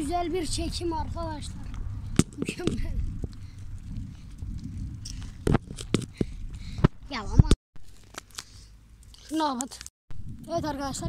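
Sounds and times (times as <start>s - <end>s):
wind rumbling on microphone: 0.0s - 7.6s, 10.1s - 11.0s.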